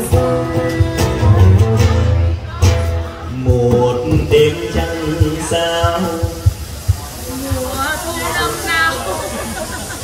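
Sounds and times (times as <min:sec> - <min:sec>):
man singing: 0:00.0 - 0:02.2, 0:03.1 - 0:06.6
acoustic guitar: 0:00.0 - 0:09.1.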